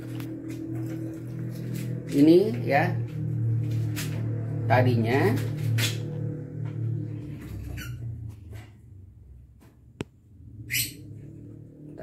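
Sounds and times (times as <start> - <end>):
low steady hum: 0.0 - 12.0
lovebird shrill squawk: 7.7 - 8.0.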